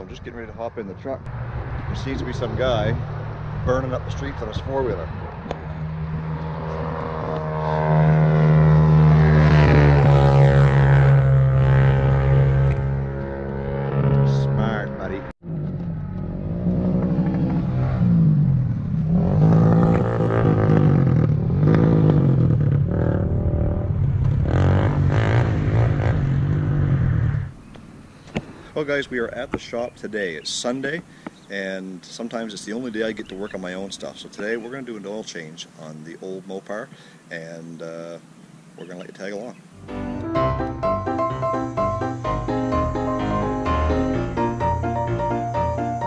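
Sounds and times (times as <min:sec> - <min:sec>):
atv engine revving: 0:01.4 - 0:28.7.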